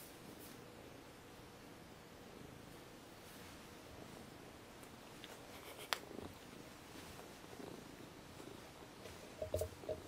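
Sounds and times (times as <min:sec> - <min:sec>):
cat purring: 0:02.1 - 0:10.0
soft rustling: 0:02.7 - 0:10.0.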